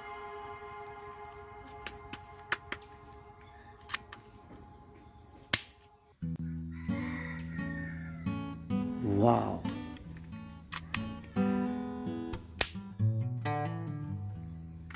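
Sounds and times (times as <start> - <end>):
guitar music: 0.0 - 4.8, 6.2 - 14.9
soft background music: 0.0 - 14.9.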